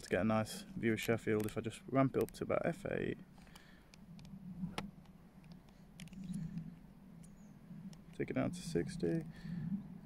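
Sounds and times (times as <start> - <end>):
steady low hum: 0.0 - 10.0
camera control dial clicks: 3.5 - 6.6.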